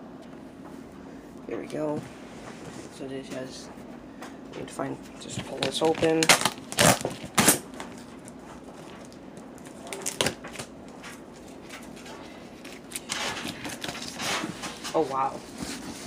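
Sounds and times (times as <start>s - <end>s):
tape and cardboard tearing: 5.6s - 7.9s, 12.6s - 14.8s.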